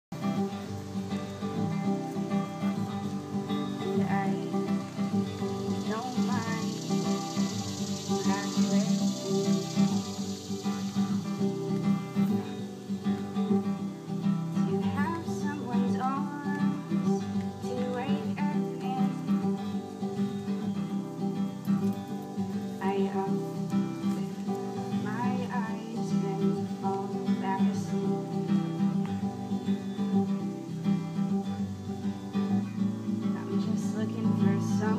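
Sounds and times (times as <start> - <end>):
amplified acoustic guitar: 0.1 - 34.9.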